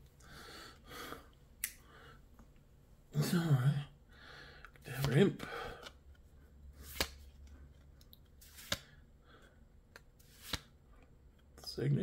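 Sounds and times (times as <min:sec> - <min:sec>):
trading cards clicking: 0:06.8 - 0:08.9.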